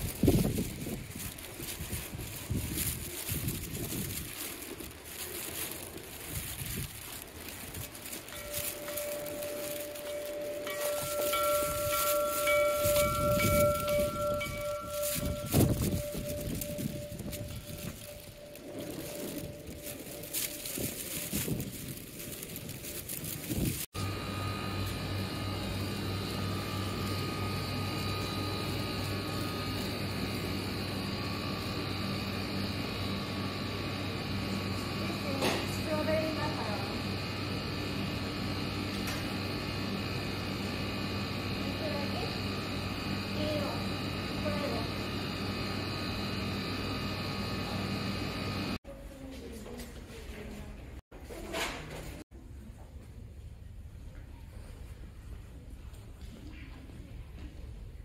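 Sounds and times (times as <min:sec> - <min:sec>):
steady low hum: 0:00.0 - 0:48.8
wind: 0:00.0 - 0:58.0
hanging bell ringing: 0:07.8 - 0:22.5, 0:24.0 - 0:48.8.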